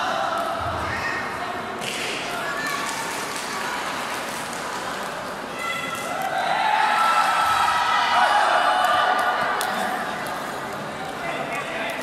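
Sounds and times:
background murmur of voices: 0.0 - 12.0.

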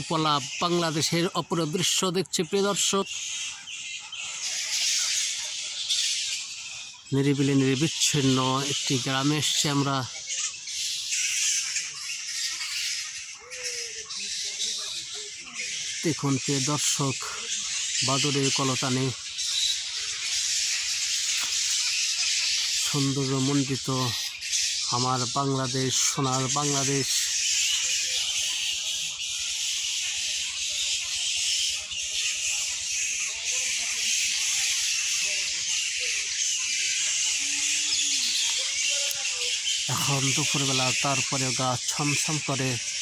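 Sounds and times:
shrill wildlife chorus: 0.0 - 43.0.

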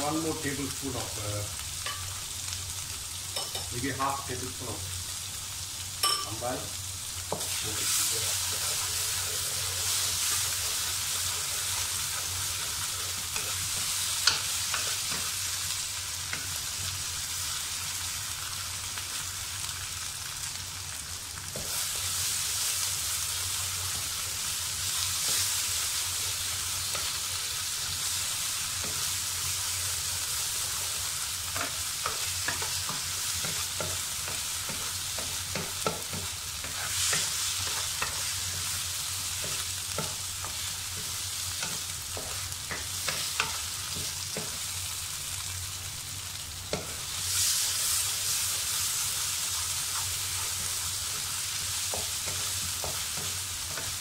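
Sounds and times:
food sizzling in hot oil: 0.0 - 54.0
wooden spatula scraping a wok: 30.1 - 44.6.

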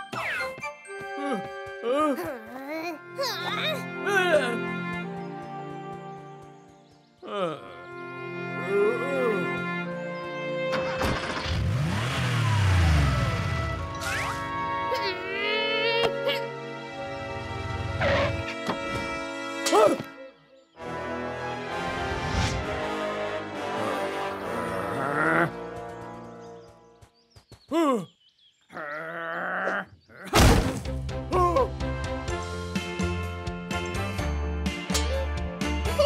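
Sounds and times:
cartoon background music: 0.0 - 11.6, 12.9 - 26.8, 30.4 - 36.0.

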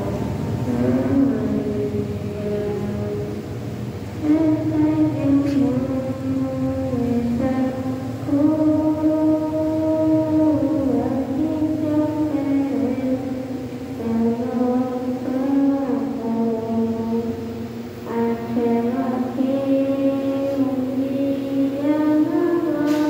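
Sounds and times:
group singing a slow hymn: 0.0 - 23.0.

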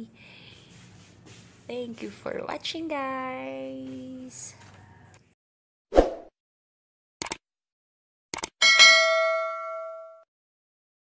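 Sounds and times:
short clicks: 7.2 - 7.4, 8.3 - 8.6
bell ding: 8.6 - 10.3.

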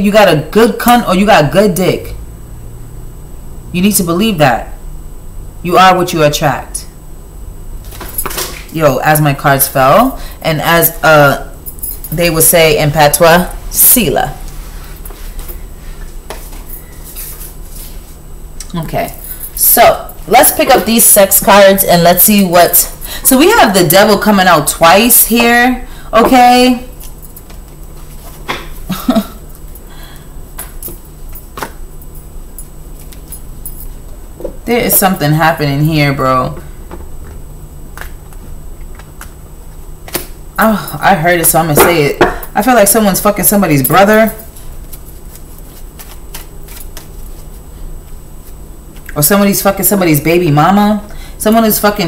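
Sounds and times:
low steady hum: 0.0 - 52.0
handling noise of cards: 7.8 - 8.8, 26.9 - 34.1, 44.4 - 49.1.

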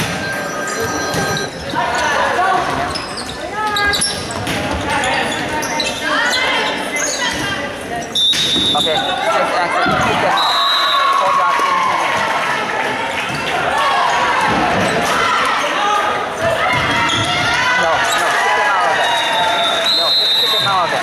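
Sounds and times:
players shouting: 8.9 - 21.0.

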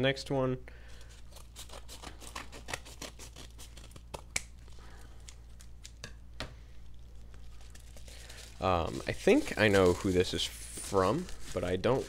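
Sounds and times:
scissors snipping paper: 1.3 - 4.5.

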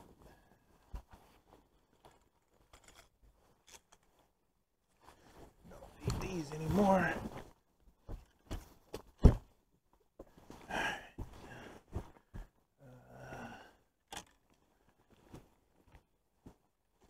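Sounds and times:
fishing gear knocks and clicks: 2.0 - 4.2, 14.1 - 14.6
breathy sighs: 10.6 - 11.8, 12.8 - 13.9.

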